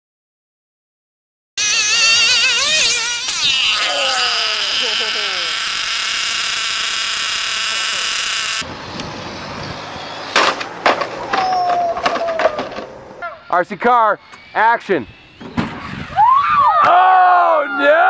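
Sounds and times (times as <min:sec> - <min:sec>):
buzzing motor whine: 0:01.6 - 0:08.7.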